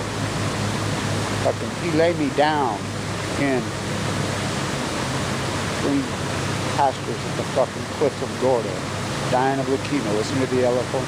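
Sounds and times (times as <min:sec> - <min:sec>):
steady rushing noise: 0:00.0 - 0:11.0.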